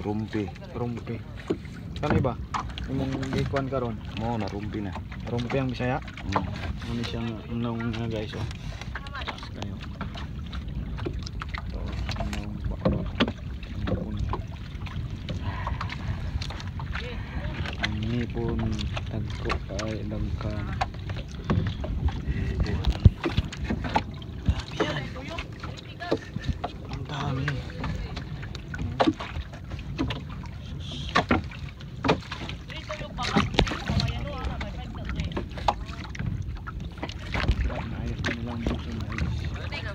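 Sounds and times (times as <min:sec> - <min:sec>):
boat motor running: 0:00.0 - 0:39.9
low rumble: 0:08.7 - 0:39.9.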